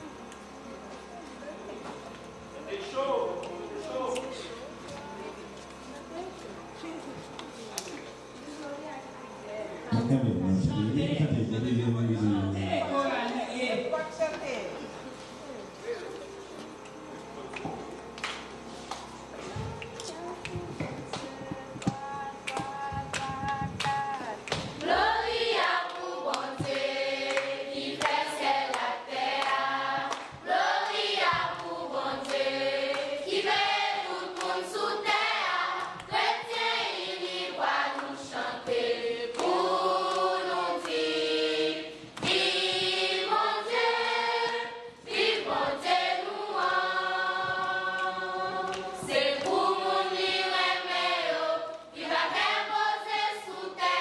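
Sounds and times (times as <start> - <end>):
choir singing: 19.2 - 54.0.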